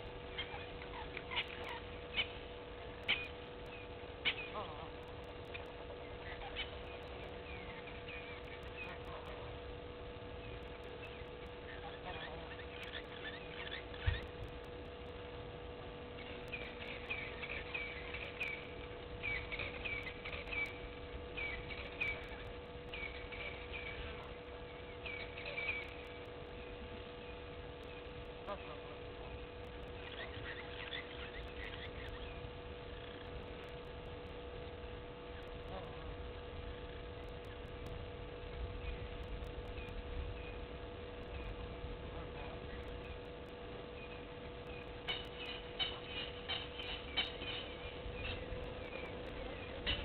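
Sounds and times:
birds calling: 0.0 - 50.0
faint steady hum: 0.0 - 50.0
steady faint tone: 0.0 - 50.0
goslings peeping: 16.2 - 24.4, 44.1 - 50.0.

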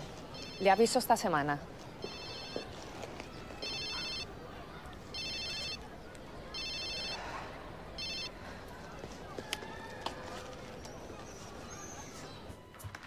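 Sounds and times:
mobile phone ringtone trilling: 0.4 - 0.8, 2.0 - 2.7, 3.6 - 4.3, 5.1 - 5.8, 6.5 - 7.2, 8.0 - 8.3.

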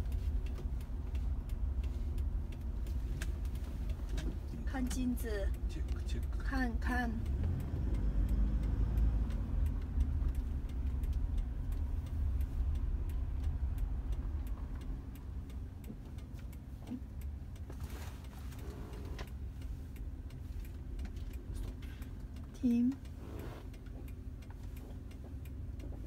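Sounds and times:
car engine and road rumble: 0.0 - 26.0
turn signal ticking: 0.0 - 26.0.

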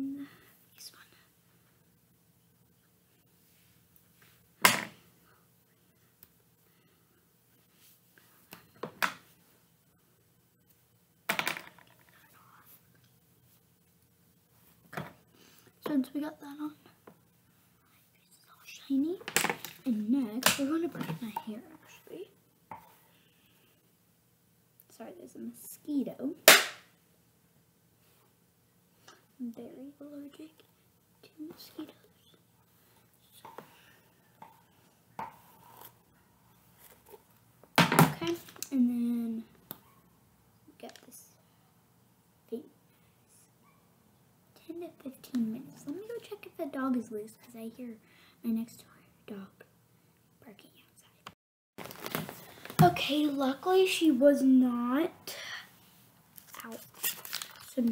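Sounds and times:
scrapes and rustles of handling: 51.8 - 53.4, 55.8 - 57.9.

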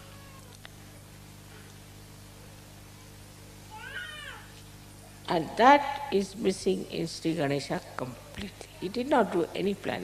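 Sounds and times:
low electrical hum: 0.0 - 10.0
high-pitched mewing cry: 3.7 - 4.6.

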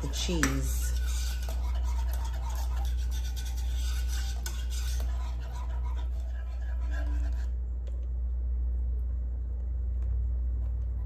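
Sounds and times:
whisk scraping against pan: 0.0 - 7.6
steady low hum: 0.0 - 11.0.

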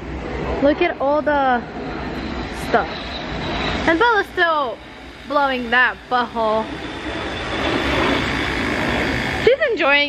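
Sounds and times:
electric air pump running: 0.0 - 10.0.

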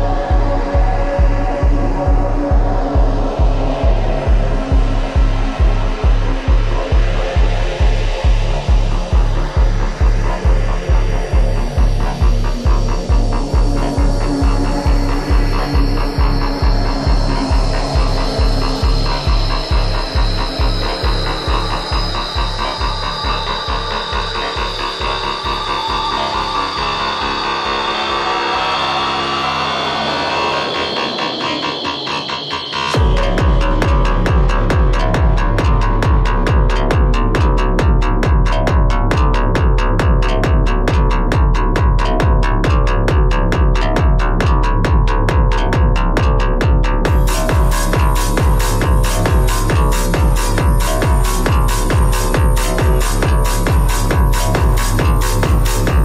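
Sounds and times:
dark techno music: 0.0 - 56.0
rough noisy synth texture: 0.0 - 56.0
steady kick drum: 0.0 - 56.0
held synth tones: 11.9 - 36.1, 47.0 - 56.0.

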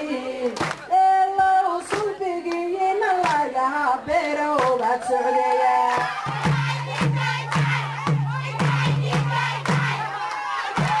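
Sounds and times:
group singing and calling out: 0.0 - 11.0.

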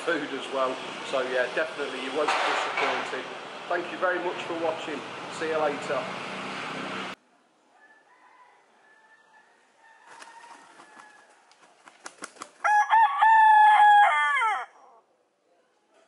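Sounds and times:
rooster crowing: 7.7 - 11.5, 12.6 - 15.0
rooster wings flapping: 10.0 - 12.8.

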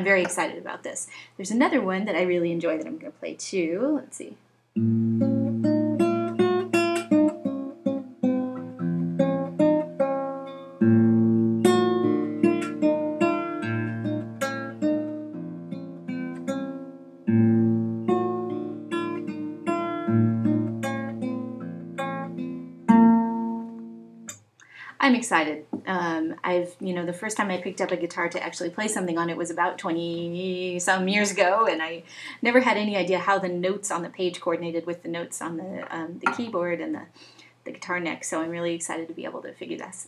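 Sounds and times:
classical guitar fingerstyle melody: 4.8 - 24.4.

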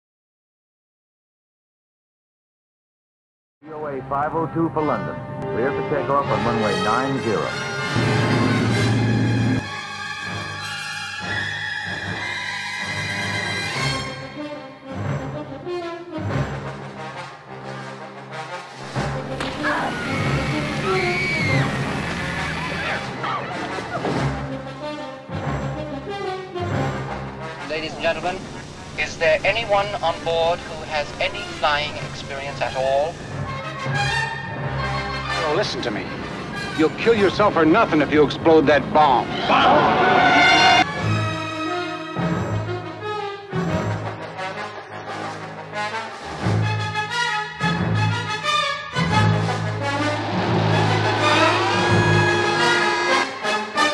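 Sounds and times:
dramatic trailer music: 5.1 - 20.9, 40.2 - 53.9
gliding high sounds: 49.6 - 53.5
crash and impact effects: 49.8 - 52.9.

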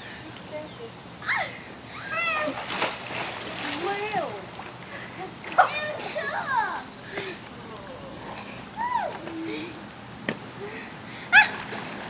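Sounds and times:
children calling: 3.7 - 9.8.

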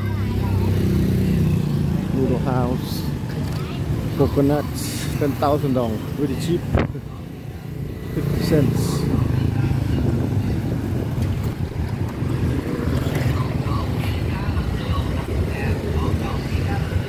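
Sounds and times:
motorbikes and scooters passing: 0.0 - 17.0.

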